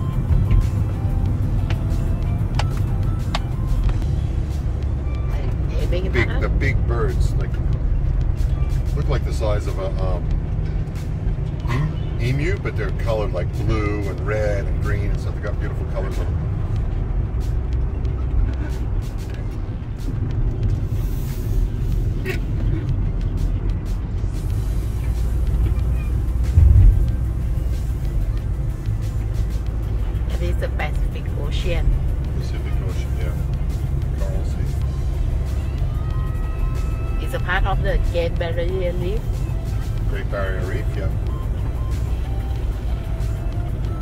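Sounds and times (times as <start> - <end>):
road and engine rumble: 0.0 - 44.0
thump: 26.6 - 27.2.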